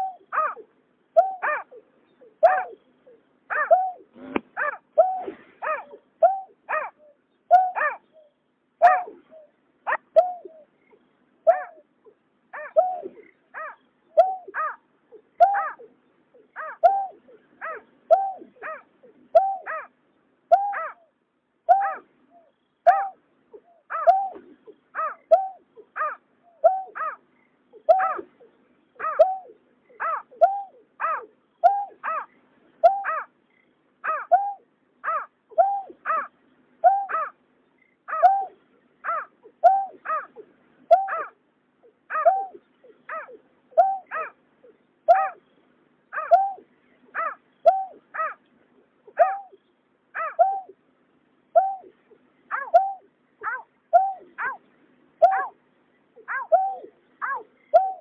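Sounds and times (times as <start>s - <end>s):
bird hooting calls: 0.0s - 48.4s, 49.0s - 50.8s, 51.5s - 58.0s.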